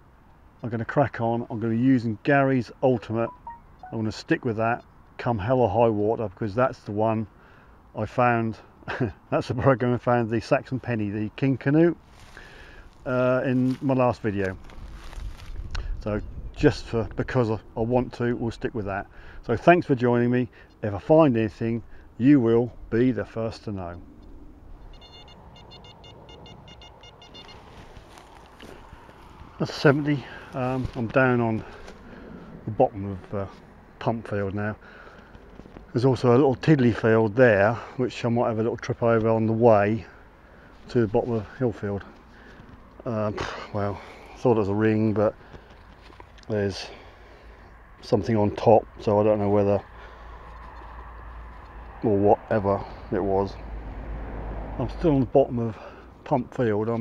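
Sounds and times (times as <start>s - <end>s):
metal detector high beeps: 3.0s - 4.0s, 24.8s - 27.8s
low outdoor rumble: 10.2s - 55.7s.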